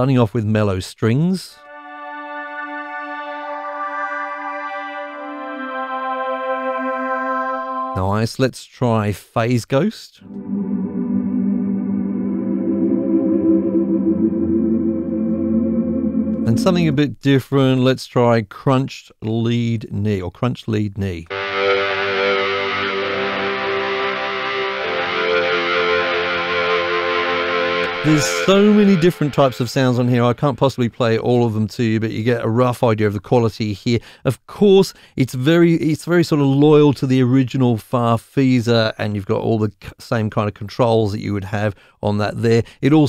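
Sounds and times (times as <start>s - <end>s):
organ holding one note: 1.6s - 8.0s, 10.2s - 17.1s, 21.3s - 30.5s.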